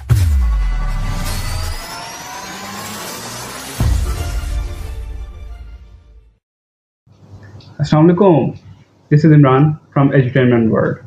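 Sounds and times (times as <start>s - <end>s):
deep bass boom: 0.0s - 2.9s
rising whoosh with climbing tones: 0.6s - 5.3s.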